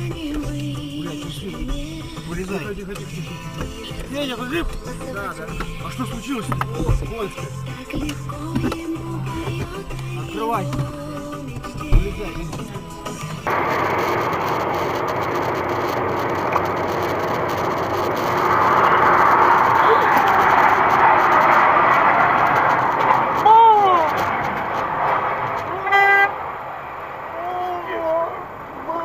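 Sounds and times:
road and engine noise in car: 0.0 - 29.0
person crying out: 23.4 - 24.1
car horn honk: 25.6 - 26.4.

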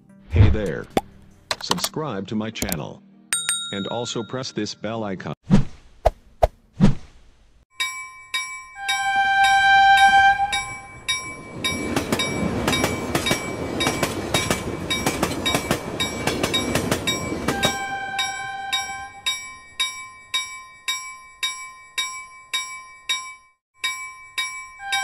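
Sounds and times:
steam train whistle: 8.9 - 10.8, 17.5 - 19.1.

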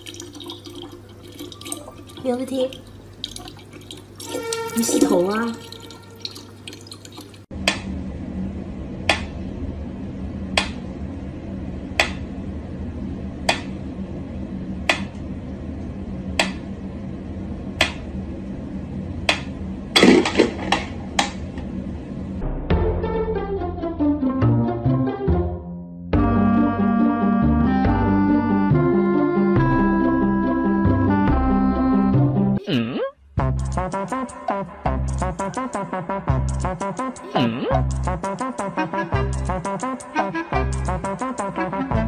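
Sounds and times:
low steady hum: 0.0 - 22.6, 40.4 - 42.0
voices: 4.8 - 5.6.

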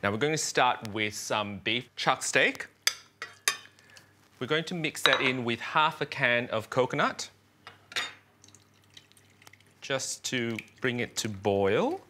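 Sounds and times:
liquid pouring into a saucepan: 8.4 - 11.4
faint trickle with drips: 8.4 - 11.5.

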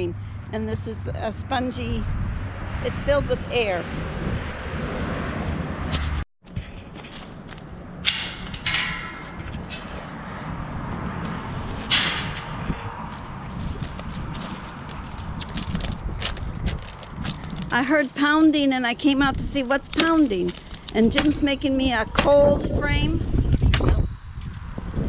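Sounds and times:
footsteps on concrete: 12.7 - 18.2.

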